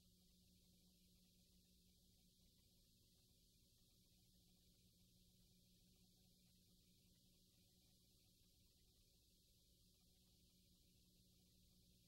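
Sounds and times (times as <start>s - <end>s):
faint hiss and hum: 0.0s - 12.0s.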